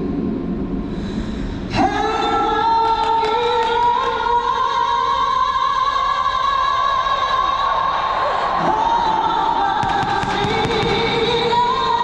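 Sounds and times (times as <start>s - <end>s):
pyrotechnics crackling pops: 9.8s - 11.6s.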